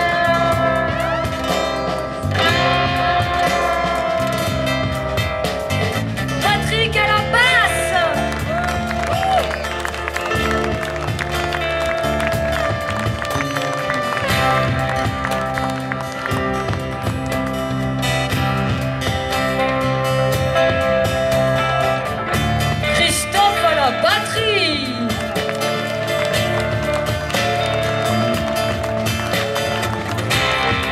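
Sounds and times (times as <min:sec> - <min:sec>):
bass line: 0:00.0 - 0:30.9
live band playing: 0:00.0 - 0:30.9.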